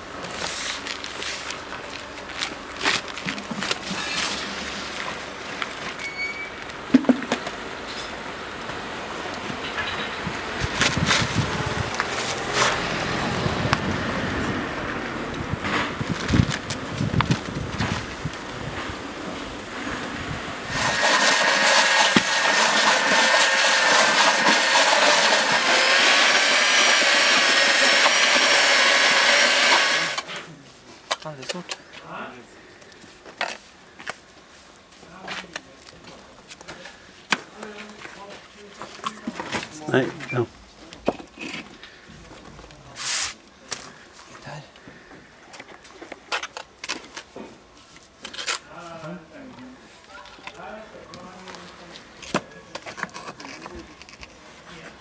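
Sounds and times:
buckets knocking and clicking: 0:06.9 - 0:07.5
electric paddle mixer whining: 0:20.7 - 0:30.3.

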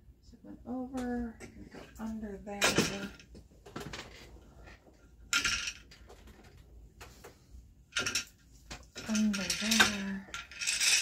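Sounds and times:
loom shuttle clattering rustle: 0:07.9 - 0:11.0.

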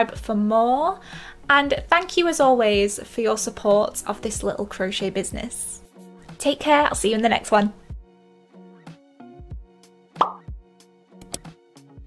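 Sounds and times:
light background music: 0:00.0 - 0:12.0.

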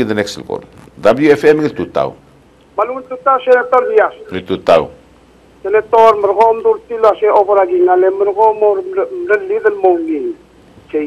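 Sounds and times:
man talking: 0:00.0 - 0:02.2, 0:02.8 - 0:05.0, 0:05.6 - 0:11.0.

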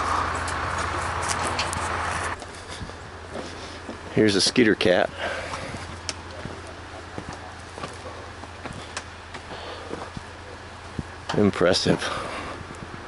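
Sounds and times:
footsteps on dry dirt: 0:00.0 - 0:11.2
steady low hum: 0:00.0 - 0:13.0.

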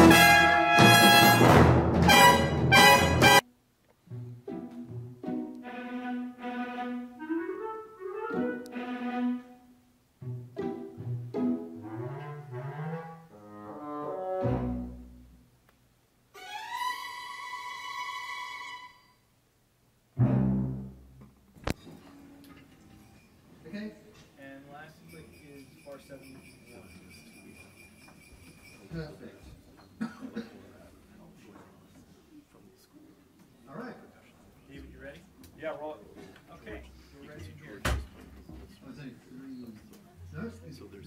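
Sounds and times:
loud brass passage: 0:00.0 - 0:03.4
orchestra playing: 0:00.0 - 0:03.5, 0:04.1 - 0:15.4, 0:20.2 - 0:21.2.

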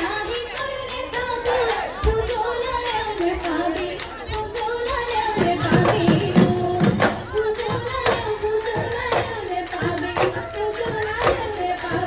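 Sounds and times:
drumming: 0:01.6 - 0:12.0.

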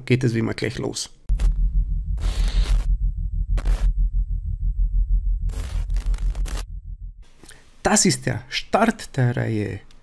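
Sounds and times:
glitchy digital noise burst: 0:01.3 - 0:02.8
pulsing low bass: 0:01.3 - 0:07.2.

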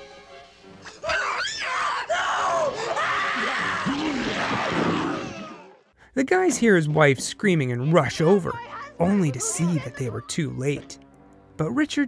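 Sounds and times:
quiet horror film music: 0:00.0 - 0:04.6
person screaming: 0:01.0 - 0:05.8.

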